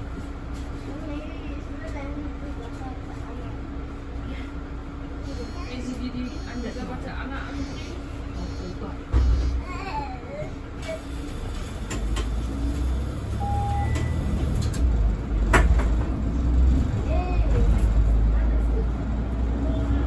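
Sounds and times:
bus engine rumble: 0.0s - 20.0s.

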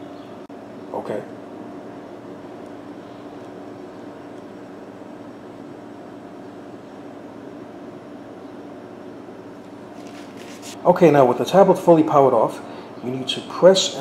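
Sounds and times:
room noise hum: 0.0s - 14.0s.

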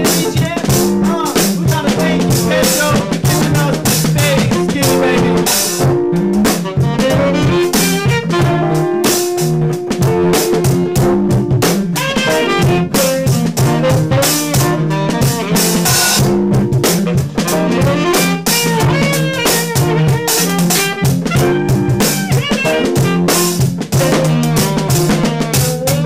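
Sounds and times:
bass line: 0.0s - 26.0s
drum kit beat: 0.0s - 26.0s
electric guitar: 0.0s - 26.0s
saxophone: 0.0s - 26.0s.

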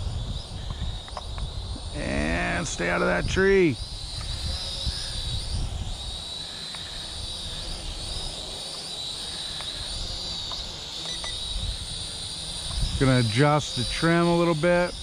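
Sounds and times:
wind rumble on microphone: 0.0s - 6.2s, 11.3s - 14.2s
toy drone whine: 0.0s - 15.0s.

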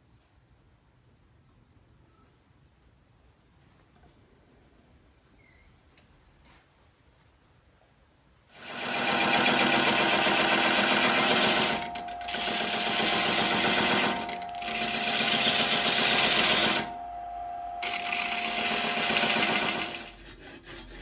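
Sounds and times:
wood lathe whining: 8.6s - 20.8s
tool rasping against spinning wood: 17.8s - 21.0s.

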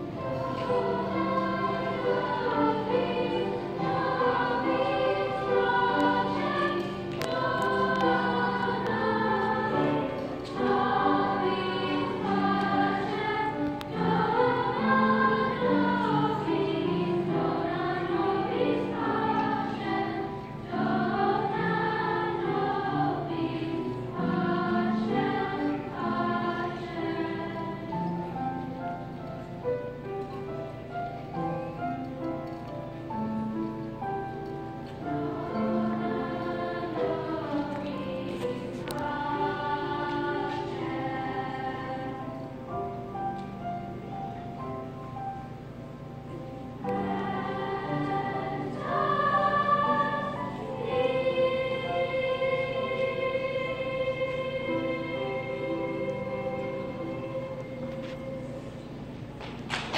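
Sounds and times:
girls' choir singing: 0.0s - 45.5s, 46.2s - 59.9s.

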